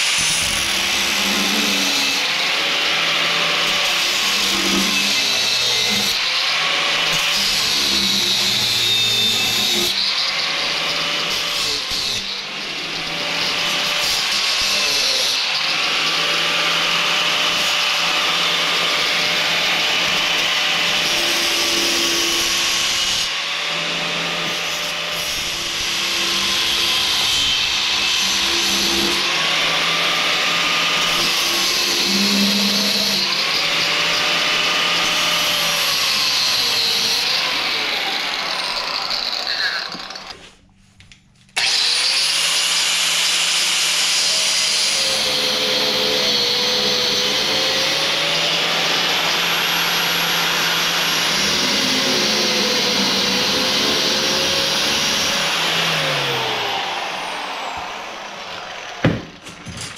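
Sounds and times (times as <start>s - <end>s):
angle grinder cutting steel: 0.0s - 40.5s, 41.6s - 59.9s.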